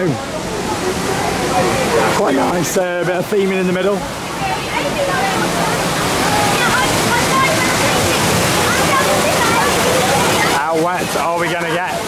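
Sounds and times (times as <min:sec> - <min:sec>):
people's voices: 0:00.0 - 0:12.0
water rushing through rapids: 0:00.0 - 0:12.0.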